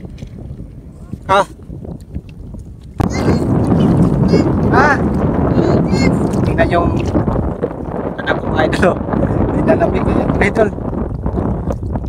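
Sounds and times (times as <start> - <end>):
wind buffeting microphone: 0.0 - 12.0
person saying ha: 3.1 - 3.5.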